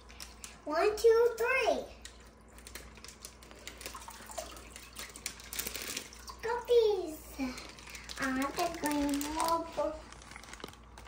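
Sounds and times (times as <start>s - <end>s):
child's voice: 0.6s - 2.0s, 6.3s - 10.1s
plastic bag crinkling: 2.0s - 6.7s, 7.3s - 11.0s
water trickling and splashing: 2.0s - 6.8s.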